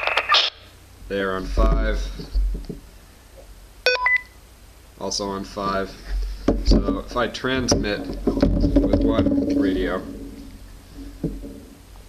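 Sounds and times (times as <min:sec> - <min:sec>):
short electronic beep: 0:03.9 - 0:04.4.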